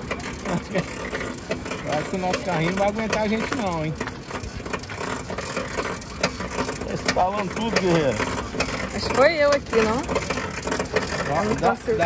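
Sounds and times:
pedal cart chain rattling: 0:00.0 - 0:12.0.

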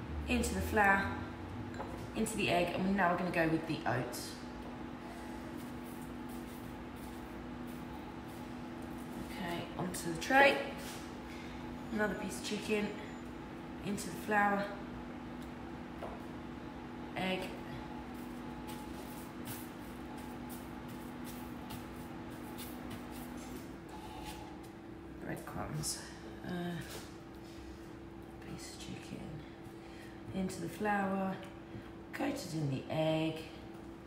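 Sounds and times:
low electrical hum: 0:00.0 - 0:34.0.

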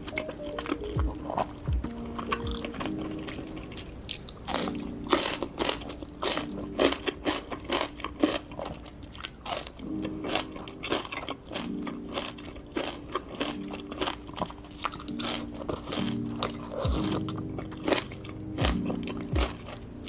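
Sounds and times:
crunching and chewing: 0:00.0 - 0:20.0.

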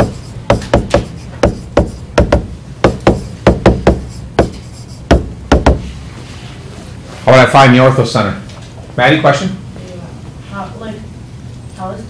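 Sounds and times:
stylus tapping on tablet screen: 0:00.0 - 0:05.8.

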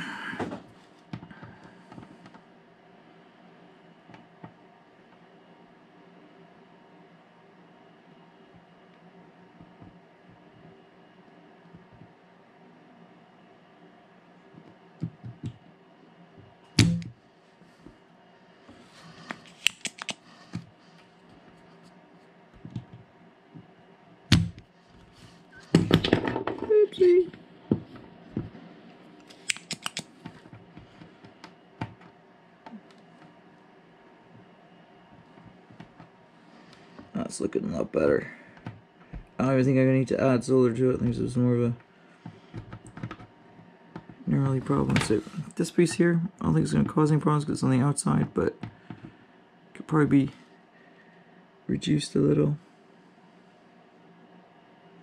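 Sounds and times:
faint steady hum: 0:00.0 - 0:55.0
desoldering pump snapping: 0:19.4 - 0:20.2, 0:29.2 - 0:30.1
sharp clicks: 0:19.6 - 0:20.2, 0:29.2 - 0:30.1.

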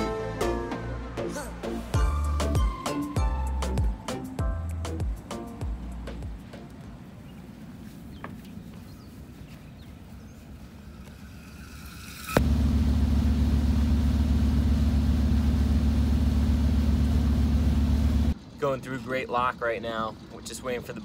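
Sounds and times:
boat engine running: 0:12.4 - 0:21.0.

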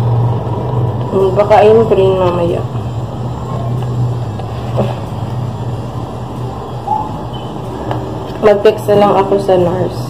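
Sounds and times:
noisy rumble: 0:00.0 - 0:10.0
steady low hum: 0:00.0 - 0:10.0.

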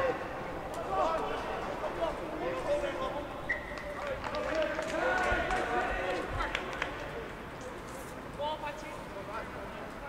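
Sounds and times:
players shouting and calling: 0:00.0 - 0:06.5.

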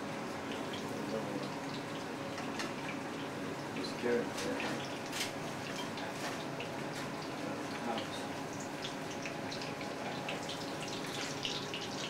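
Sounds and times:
chicken frying in oil: 0:00.0 - 0:12.0.

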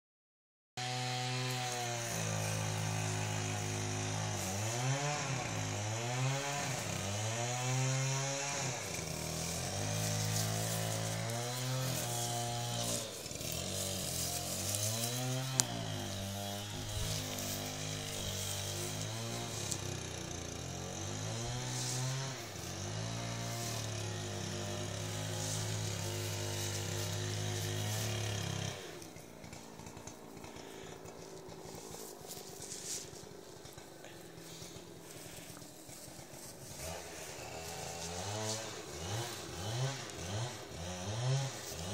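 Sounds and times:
small engine buzzing: 0:00.8 - 0:41.9.

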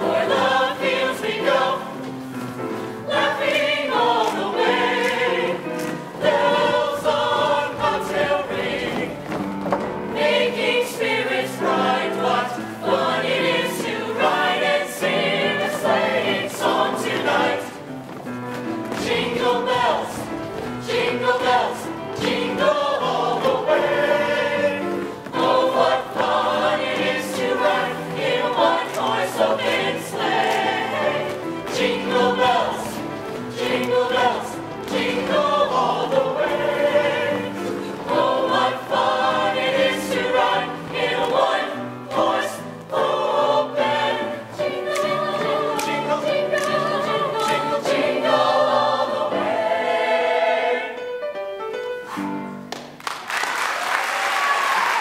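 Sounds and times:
mixed choir singing in harmony: 0:00.0 - 0:51.2.

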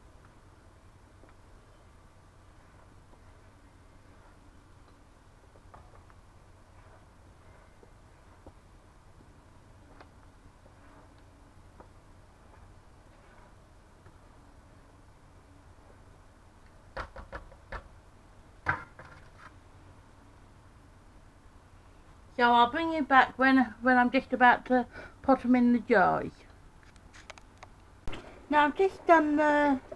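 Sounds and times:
faint low hum: 0:00.0 - 0:29.9.

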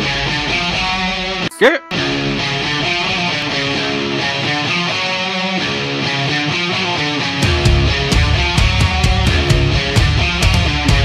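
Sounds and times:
electric guitar riff: 0:00.0 - 0:11.0
loud voice call rising in pitch: 0:01.5 - 0:02.0.

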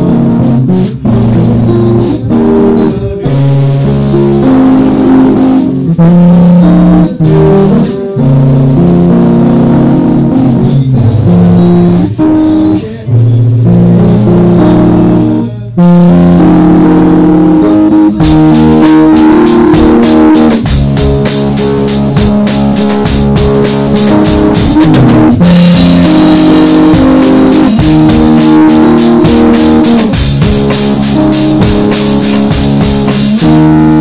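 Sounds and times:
distorted live rock ballad: 0:00.0 - 0:34.0.

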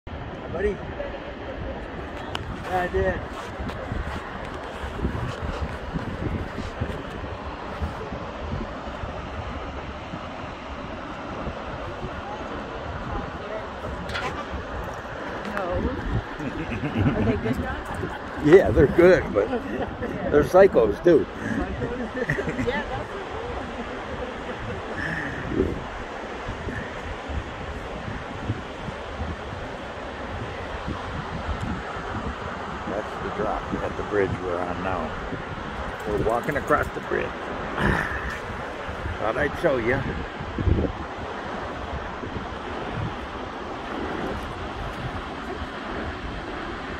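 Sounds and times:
rushing whitewater: 0:00.1 - 0:46.9
wind buffeting microphone: 0:00.1 - 0:46.9.

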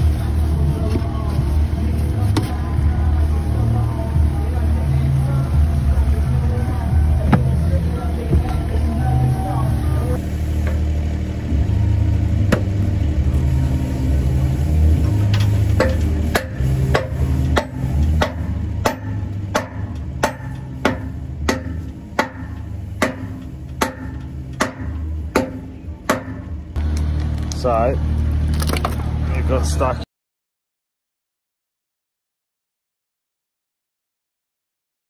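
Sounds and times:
low rumble: 0:00.0 - 0:29.6.

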